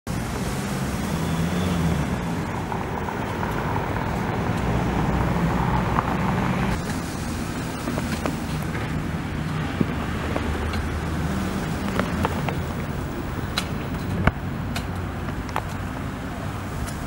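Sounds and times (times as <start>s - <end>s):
street traffic rumble: 0.0s - 17.0s.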